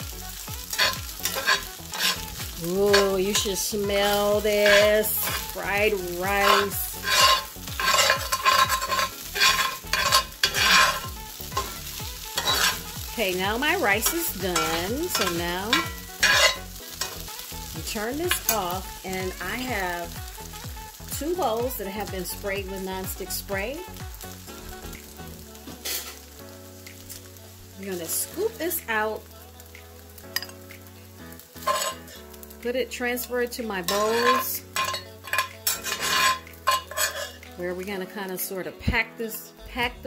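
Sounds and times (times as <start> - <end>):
rice sizzling: 0.0 - 39.4
metal spatula scraping skillet: 0.6 - 17.5, 18.2 - 19.7, 25.7 - 26.2, 31.5 - 32.3, 33.8 - 37.4.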